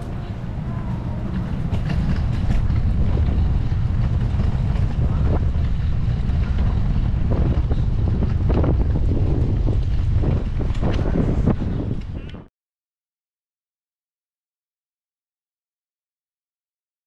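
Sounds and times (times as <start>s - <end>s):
wind buffeting microphone: 0.0s - 12.5s.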